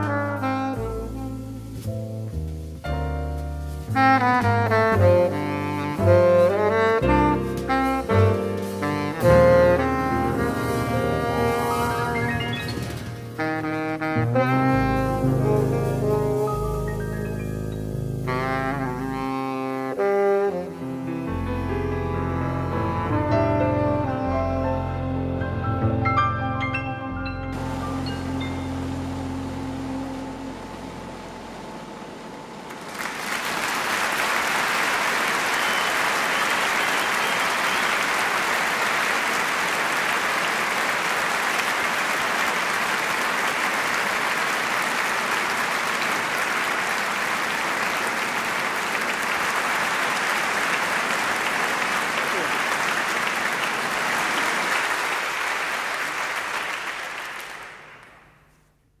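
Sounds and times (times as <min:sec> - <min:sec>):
crowd applauding: 0:09.8 - 0:13.8, 0:32.6 - 0:58.4.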